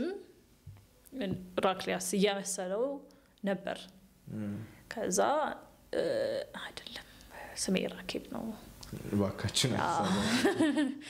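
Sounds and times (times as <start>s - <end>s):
person speaking: 4.3s - 4.7s, 8.8s - 10.5s.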